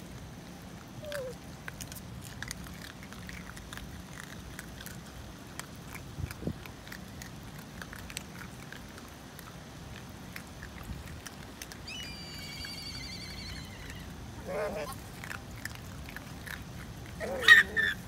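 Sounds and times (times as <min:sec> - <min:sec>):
animals crunching food pellets: 0:00.0 - 0:18.0
high warbling animal call: 0:11.8 - 0:14.9.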